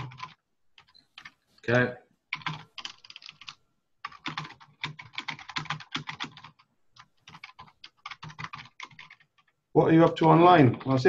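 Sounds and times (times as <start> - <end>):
typing on computer keyboard: 0.0 - 1.4, 2.3 - 9.6.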